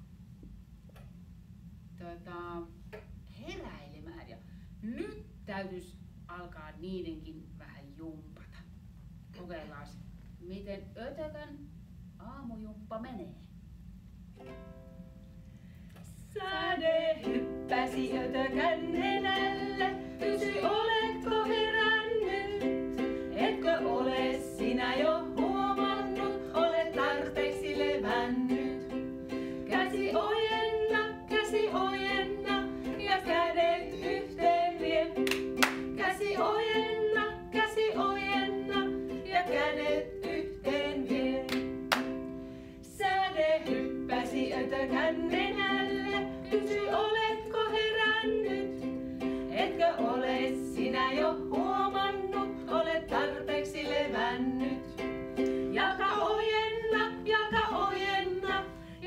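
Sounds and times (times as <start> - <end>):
strummed ukulele: 14.3 - 15.2, 16.5 - 59.0
women singing: 16.1 - 41.9, 42.8 - 59.0.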